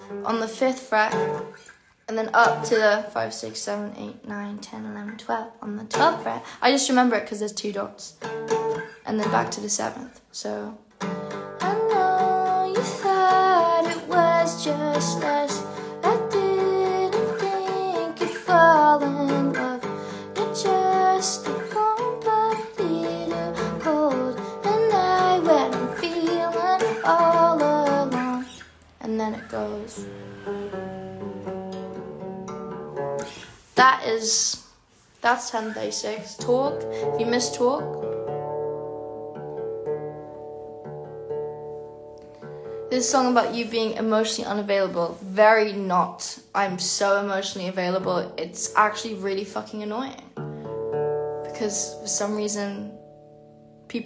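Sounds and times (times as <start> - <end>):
guitar strumming: 0.0 - 3.5, 5.0 - 7.1, 7.7 - 10.1, 10.8 - 34.6, 35.5 - 45.0, 47.3 - 54.0
woman singing: 2.1 - 8.0, 9.1 - 30.1, 35.3 - 38.0, 42.9 - 50.2, 51.5 - 53.0.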